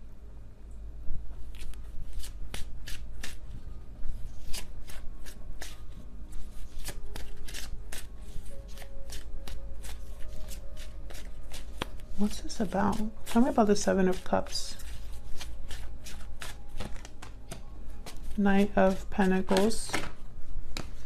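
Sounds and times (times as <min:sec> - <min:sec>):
cards being shuffled: 0:01.4 - 0:21.0.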